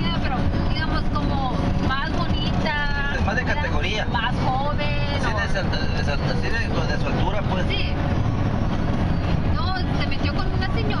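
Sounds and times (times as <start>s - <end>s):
people talking: 0.0s - 7.9s, 9.5s - 11.0s
road and engine rumble: 0.0s - 11.0s.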